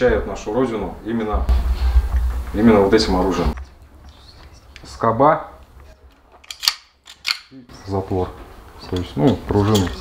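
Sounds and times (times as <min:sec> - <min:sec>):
pistol metallic clicks: 0:06.4 - 0:07.5.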